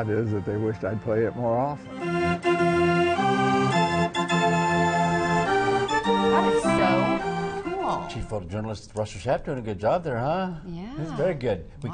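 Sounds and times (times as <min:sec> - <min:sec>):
band organ playing chords: 0:00.0 - 0:08.4.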